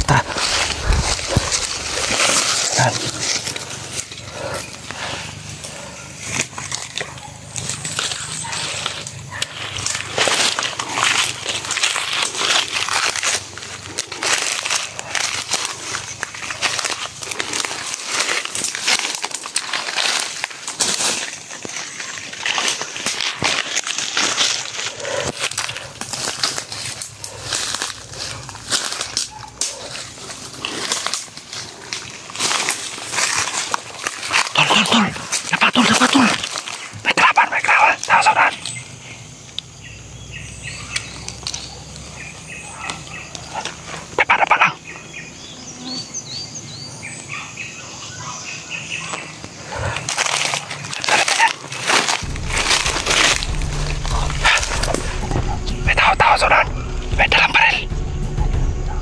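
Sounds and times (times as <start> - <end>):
brush rustling against body: 0.0 - 34.6
footsteps crunching through leaves: 0.0 - 39.5, 47.3 - 59.0.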